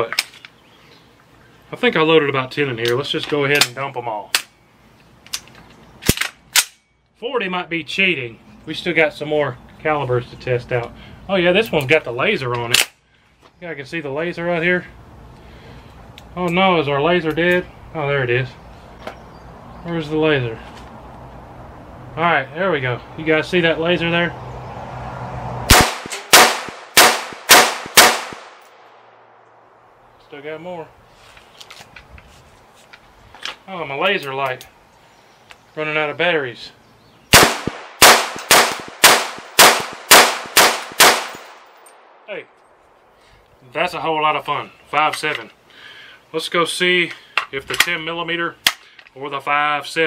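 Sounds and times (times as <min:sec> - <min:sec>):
rifle metallic clicks and clacks: 0:02.8 - 0:04.6, 0:05.2 - 0:06.9, 0:12.5 - 0:13.0
rifle shots: 0:25.7 - 0:29.2, 0:37.3 - 0:42.2.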